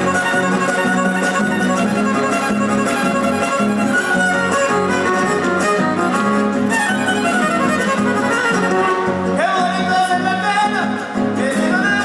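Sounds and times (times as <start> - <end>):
violin melody: 0.0 - 9.4
strummed guitars: 0.0 - 12.0.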